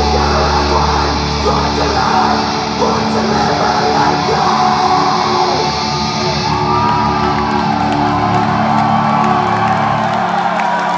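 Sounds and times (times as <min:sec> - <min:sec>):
metal band playing live: 0:00.0 - 0:10.1
fans yelling and whooping: 0:00.0 - 0:10.9.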